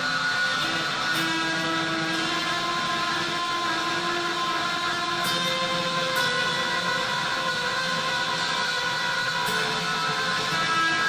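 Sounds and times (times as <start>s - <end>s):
electric guitar with delay: 0.0s - 11.0s.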